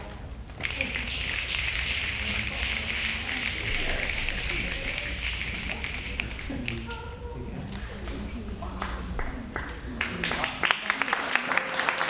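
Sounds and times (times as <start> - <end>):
crowd applauding: 0.6 - 7.0, 8.8 - 12.0.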